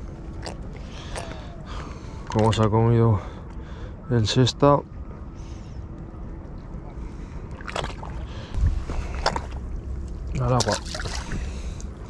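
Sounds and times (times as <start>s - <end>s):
wind rumbling on microphone: 5.9s - 12.0s
water sloshing: 7.4s - 12.0s
sharp splashing or handling noises: 7.6s - 12.0s.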